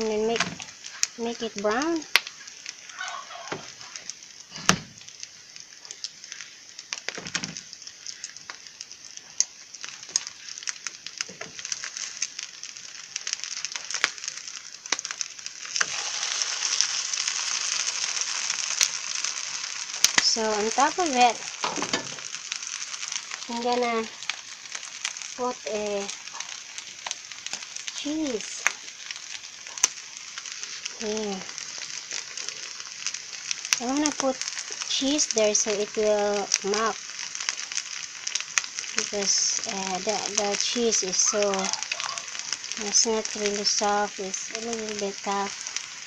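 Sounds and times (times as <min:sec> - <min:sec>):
patties sizzling in hot oil: 0:00.0 - 0:46.0.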